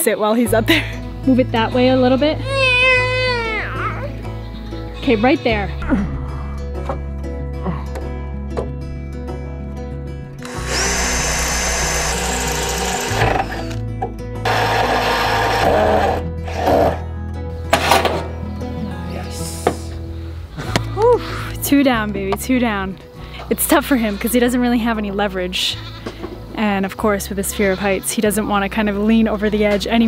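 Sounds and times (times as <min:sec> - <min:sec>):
background music: 0:00.0 - 0:30.0
cordless drill driving screws: 0:10.4 - 0:13.8, 0:14.4 - 0:16.9.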